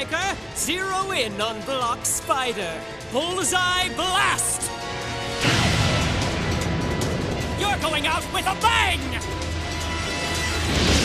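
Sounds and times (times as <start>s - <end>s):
dramatic background music: 0.0s - 11.0s
cartoon explosion blast: 5.4s - 6.3s.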